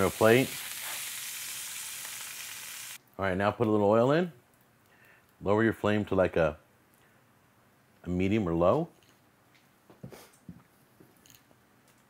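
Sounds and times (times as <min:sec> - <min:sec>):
sausage sizzling in a skillet: 0:00.0 - 0:03.0.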